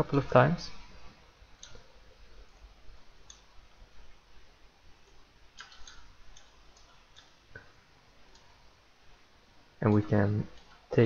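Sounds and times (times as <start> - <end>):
low steady hiss: 0.0 - 11.0
computer mouse clicks: 1.6 - 1.9, 3.2 - 3.5, 5.0 - 7.7.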